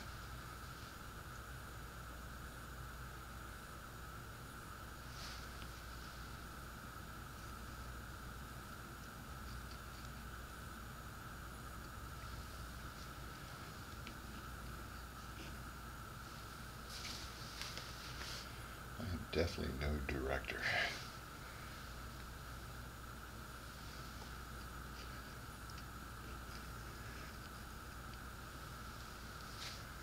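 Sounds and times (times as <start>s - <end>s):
faint high whine: 0.0s - 30.0s.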